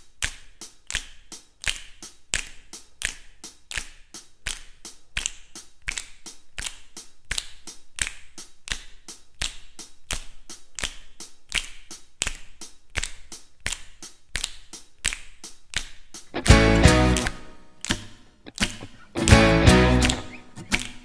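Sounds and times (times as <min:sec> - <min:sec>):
finger snapping: 0:00.1 - 0:21.0.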